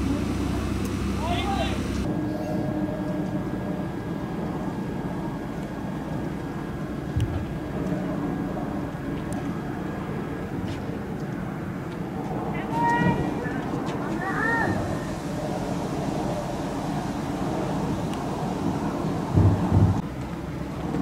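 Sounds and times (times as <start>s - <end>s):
faint steady tones: 0.0s - 10.2s, 14.7s - 20.0s
steady low rumble: 0.0s - 21.0s.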